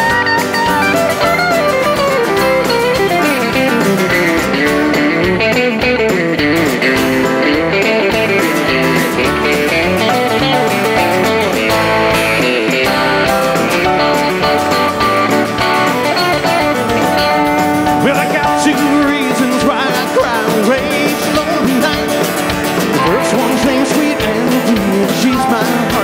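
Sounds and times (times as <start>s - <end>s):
bass guitar: 0.0s - 26.0s
drums: 0.0s - 26.0s
electric guitars: 0.0s - 26.0s
lead guitar: 0.0s - 26.0s.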